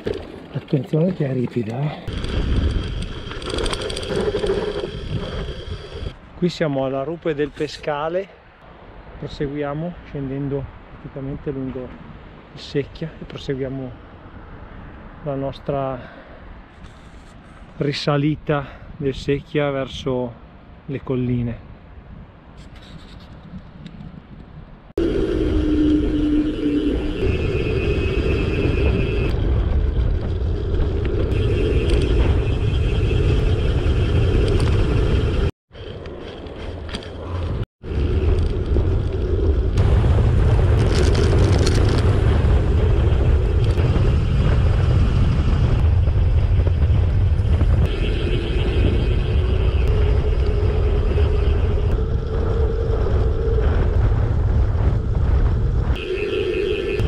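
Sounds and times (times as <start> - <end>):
bicycle tyres on asphalt: 0.0 - 6.2, 22.6 - 57.0
wind buffeting microphone: 0.0 - 6.3, 21.7 - 57.0.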